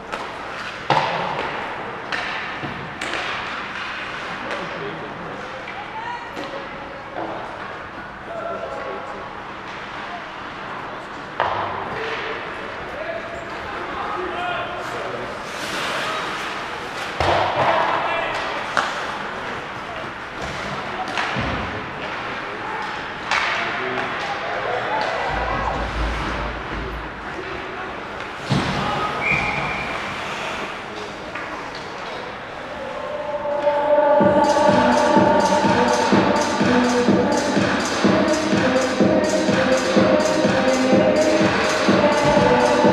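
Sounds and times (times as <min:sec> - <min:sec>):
puck and sticks knocking boards: 0:00.1 - 0:04.3, 0:17.0 - 0:19.0
murmur of voices: 0:00.9 - 0:42.9
music over arena speakers: 0:33.7 - 0:42.9.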